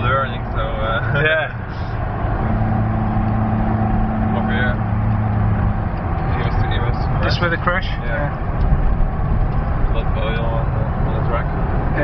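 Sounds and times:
car engine running under load: 0:00.0 - 0:12.0
road noise: 0:00.0 - 0:12.0.

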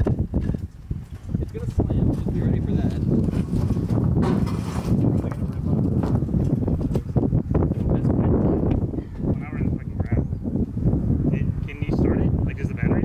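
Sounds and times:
footsteps on trailer deck: 0:00.0 - 0:09.4
wind rumble on microphone: 0:00.0 - 0:13.0.

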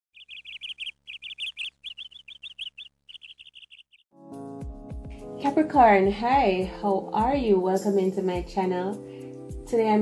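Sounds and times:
small bird chirping: 0:00.1 - 0:04.1.

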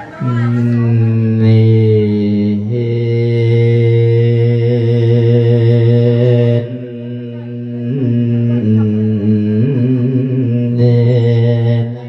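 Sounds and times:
amplified man chanting: 0:00.0 - 0:12.0.

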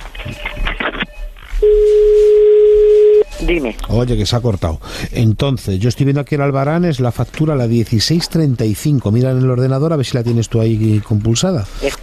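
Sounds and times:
telephone line tone: 0:00.2 - 0:03.7.

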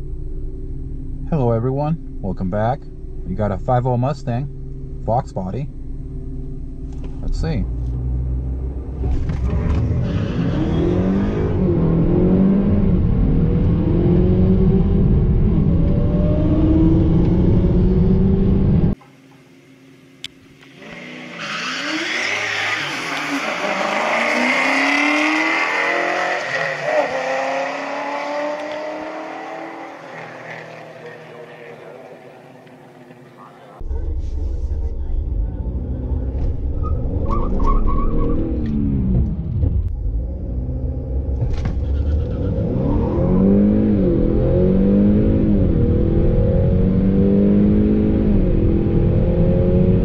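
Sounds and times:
car engine revving through upshifts: 0:07.5 - 0:19.0, 0:20.7 - 0:33.5, 0:36.9 - 0:50.0
race car engines passing: 0:20.7 - 0:33.8.

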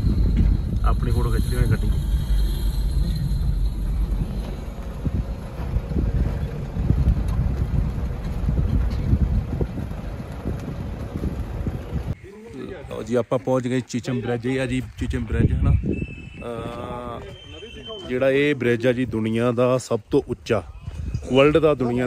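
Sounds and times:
car moving slowly: 0:00.0 - 0:12.2
wind buffeting microphone: 0:00.0 - 0:12.2, 0:14.4 - 0:18.0, 0:20.6 - 0:22.0.

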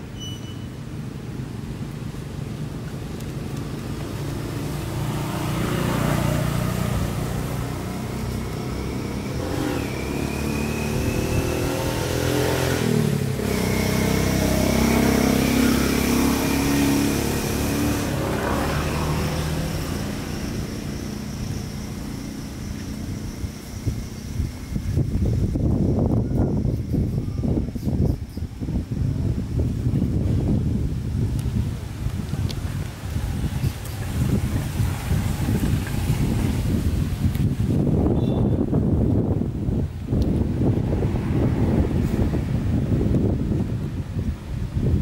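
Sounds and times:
vehicle engines passing: 0:00.0 - 0:28.0, 0:28.7 - 0:45.0.

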